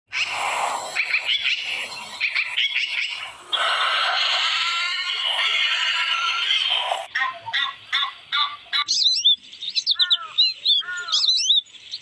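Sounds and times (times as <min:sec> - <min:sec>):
birds chirping: 0:00.1 - 0:12.0.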